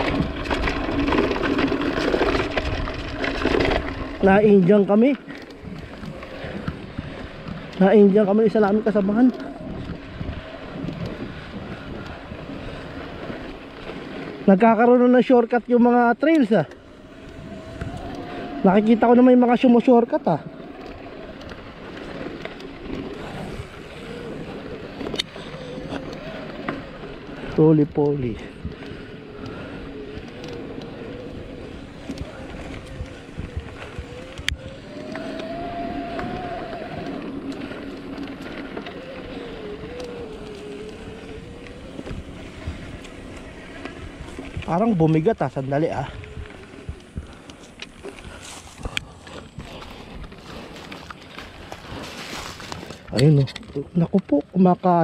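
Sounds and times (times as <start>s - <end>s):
mountain bike clattering: 0.0s - 55.0s
tyres rolling over loose stones: 0.0s - 55.0s
wind on microphone: 5.6s - 14.6s, 16.8s - 53.6s.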